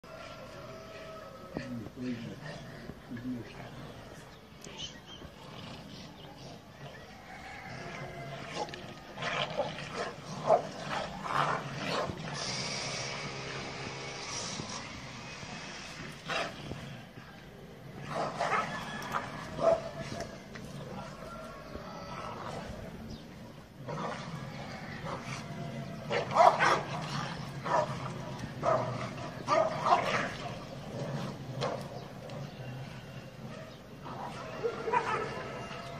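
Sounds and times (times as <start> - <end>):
dogs fighting: 0.3 - 35.9
dog barking: 26.1 - 26.9, 29.5 - 30.2, 34.4 - 35.5.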